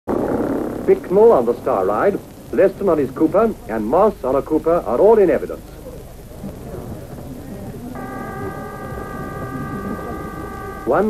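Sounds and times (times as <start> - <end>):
low background murmur: 0.1 - 11.0
steady high-pitched horn tone: 8.0 - 11.0.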